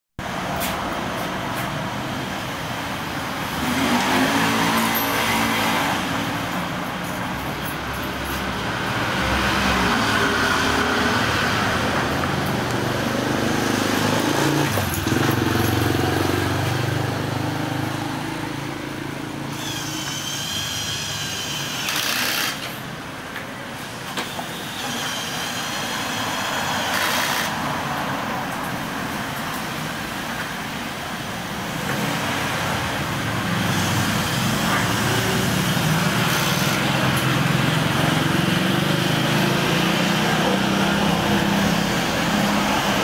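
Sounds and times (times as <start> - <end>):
road noise: 0.1 - 43.0
vehicles passing: 0.2 - 43.0.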